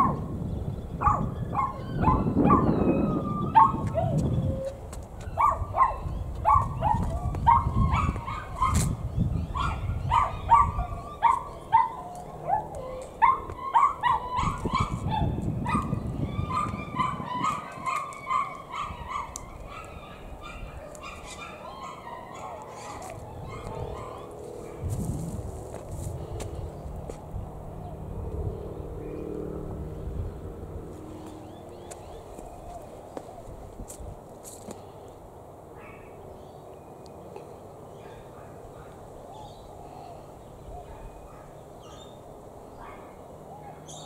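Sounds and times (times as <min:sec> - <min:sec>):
low microphone rumble: 0:00.0 - 0:17.9, 0:23.1 - 0:34.2
dog yapping: 0:01.0 - 0:04.2, 0:05.2 - 0:24.8.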